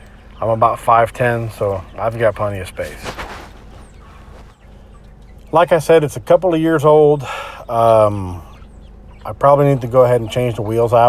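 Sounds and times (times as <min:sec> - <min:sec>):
faint high bird chirps: 0:00.0 - 0:11.0.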